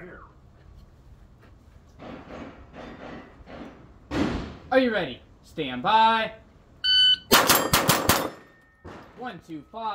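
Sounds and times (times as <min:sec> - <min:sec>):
shot timer beep: 0:06.8 - 0:07.7
rifle shots: 0:07.3 - 0:09.0.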